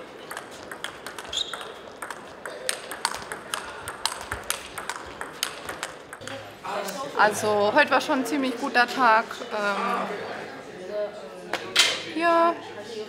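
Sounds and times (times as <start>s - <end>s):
table tennis ball clicks: 0.3s - 6.4s.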